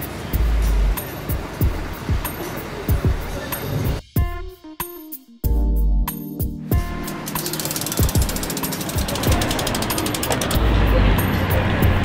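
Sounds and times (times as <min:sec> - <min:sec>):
bicycle freehub ticking: 0:06.8 - 0:10.6.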